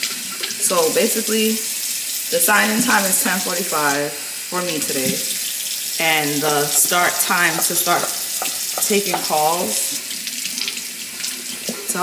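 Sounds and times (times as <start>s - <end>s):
tap water running into sink: 0.0s - 12.0s.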